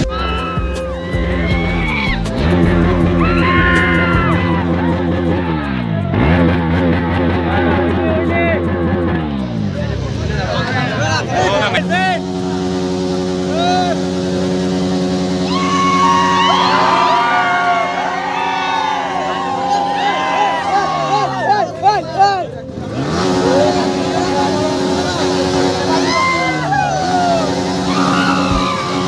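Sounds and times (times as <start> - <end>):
engine-like hum: 0.0 - 29.0
young men shouting excitedly: 3.2 - 5.6, 15.4 - 22.6, 23.6 - 29.0.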